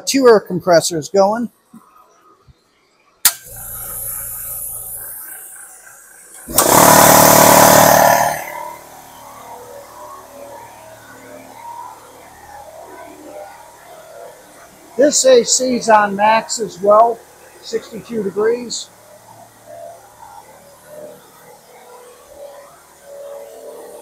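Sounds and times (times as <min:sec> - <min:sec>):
air compressor motor humming: 0:03.3 - 0:24.0.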